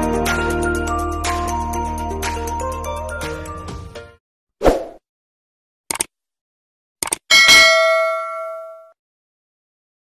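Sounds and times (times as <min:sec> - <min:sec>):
click: 0:05.9 - 0:06.1, 0:07.0 - 0:07.2
bell ding: 0:07.3 - 0:09.0.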